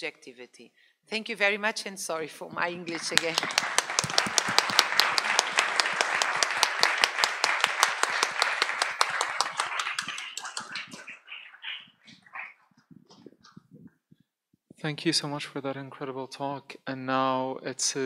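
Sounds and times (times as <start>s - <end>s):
audience applauding: 2.8s - 12.5s.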